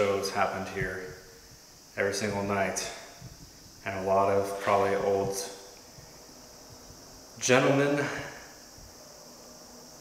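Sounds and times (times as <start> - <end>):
man speaking: 0.0 - 1.1, 2.0 - 3.1, 3.8 - 5.7, 7.4 - 8.5
high-pitched room tone hiss: 0.0 - 10.0.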